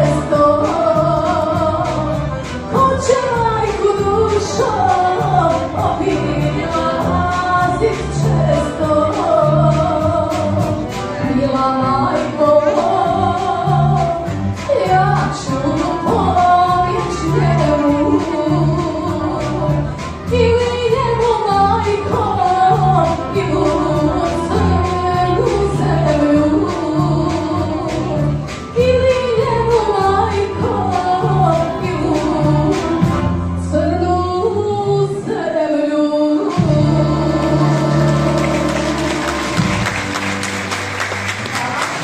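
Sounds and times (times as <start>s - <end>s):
accordions: 0.0s - 34.0s
electric bass: 0.0s - 35.1s, 36.6s - 40.8s
woman singing folk song: 0.0s - 39.6s
drums: 0.0s - 42.0s
audience applause: 37.5s - 42.0s.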